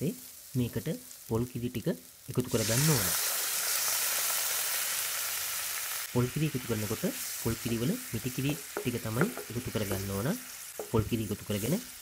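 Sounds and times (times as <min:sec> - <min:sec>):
liquid sizzling in a wok: 0:00.0 - 0:12.0.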